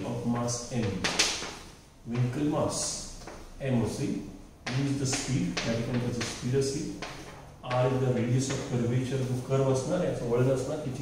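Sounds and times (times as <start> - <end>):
man speaking: 0.0 - 1.2, 2.0 - 7.0, 7.6 - 11.0.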